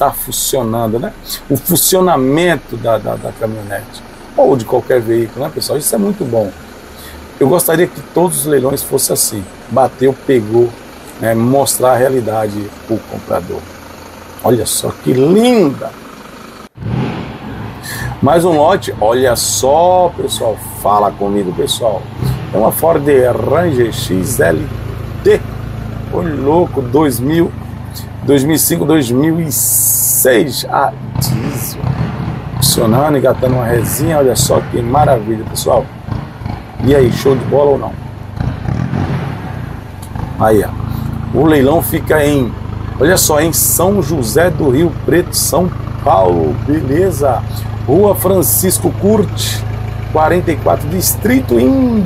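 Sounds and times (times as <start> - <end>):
diesel engine idling: 0.0 - 52.0
diesel pickup engine running: 0.0 - 52.0.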